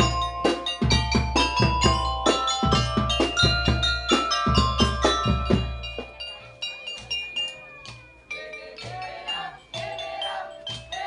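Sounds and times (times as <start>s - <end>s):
marimba ensemble playing: 0.0s - 11.0s.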